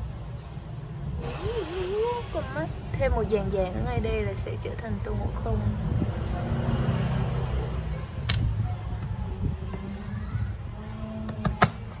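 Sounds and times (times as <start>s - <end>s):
hiss: 1.2s - 2.8s.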